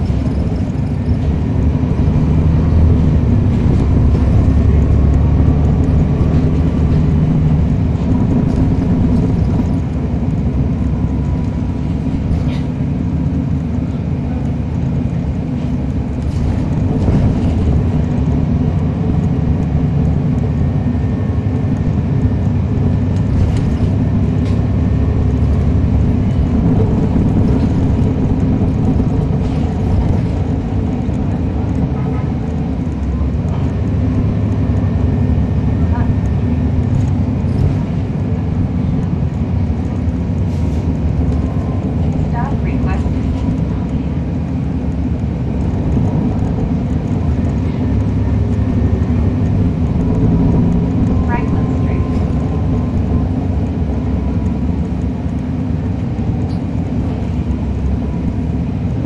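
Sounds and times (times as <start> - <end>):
diesel bus engine drone: 0.0 - 59.0.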